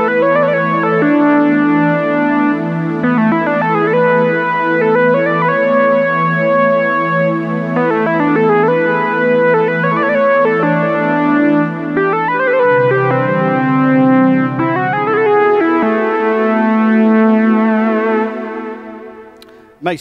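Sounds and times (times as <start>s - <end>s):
sustained synth pad chord: 0.0s - 19.5s
synth lead melody: 0.0s - 19.8s.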